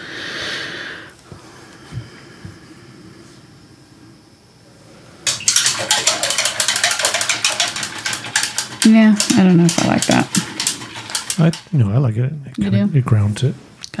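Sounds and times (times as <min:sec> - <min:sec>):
paintbrush scraping on palette: 0:05.3 - 0:11.8.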